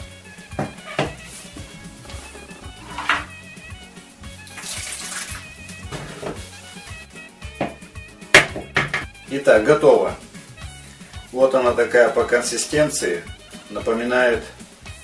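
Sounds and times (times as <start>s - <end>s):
background music: 0.0s - 15.0s
spatula stirring paste: 0.2s - 8.2s
water pouring into bowl: 4.4s - 5.6s
sharp knocks: 7.6s - 9.2s.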